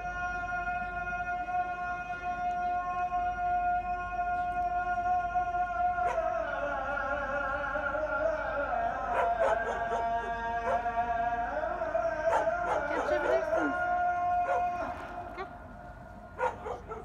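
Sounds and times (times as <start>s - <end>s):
dogs howling: 6.0s - 6.4s, 9.0s - 11.0s, 12.2s - 15.6s, 16.4s - 17.0s
dogs barking and yelping: 9.1s - 10.9s, 12.3s - 13.8s, 14.5s - 14.8s, 16.4s - 17.0s.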